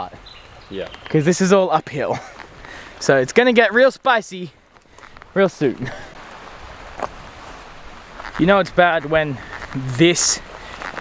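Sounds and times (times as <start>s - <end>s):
walking through dry grass: 4.6s - 11.0s.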